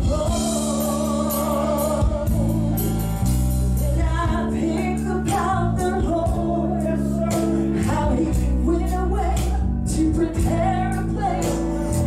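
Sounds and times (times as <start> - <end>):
keyboard bass and drums: 0.0 - 12.0
woman singing: 0.0 - 12.0.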